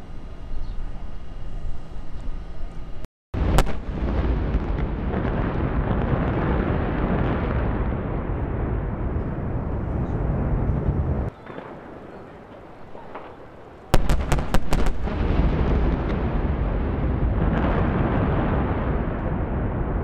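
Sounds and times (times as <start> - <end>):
low explosion rumble: 3.4 - 20.0
sharp blast bangs: 3.4 - 20.0.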